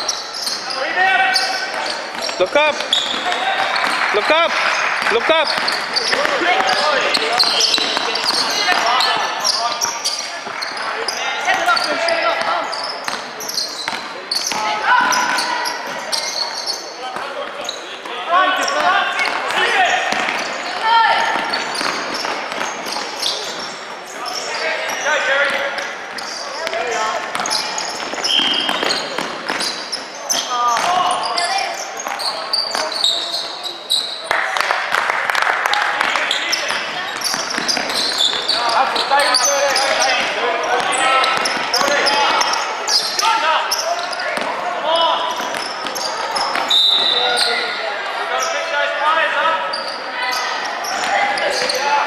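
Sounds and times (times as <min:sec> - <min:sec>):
sneakers squeaking on floor: 0:00.0 - 0:34.4, 0:36.0 - 0:52.0
players calling out: 0:00.0 - 0:52.0
basketball bouncing on court: 0:01.7 - 0:10.8, 0:11.4 - 0:16.2, 0:18.6 - 0:23.8, 0:24.9 - 0:31.4, 0:36.0 - 0:38.6, 0:39.8 - 0:42.6, 0:44.0 - 0:44.6, 0:45.3 - 0:47.2.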